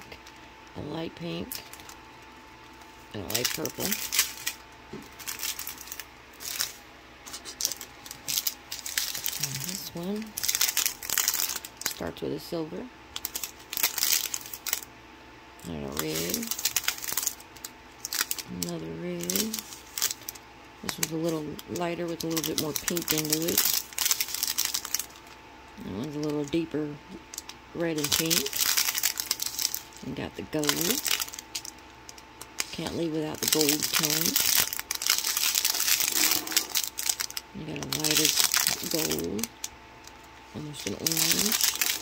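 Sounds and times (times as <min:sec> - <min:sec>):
plastic packets crinkling: 0:00.0 - 0:06.8, 0:07.4 - 0:12.0, 0:13.1 - 0:14.9, 0:15.6 - 0:42.0.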